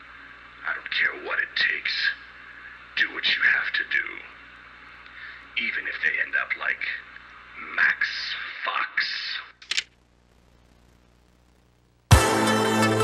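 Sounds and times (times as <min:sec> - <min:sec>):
sharp click: 0:09.6 - 0:09.9.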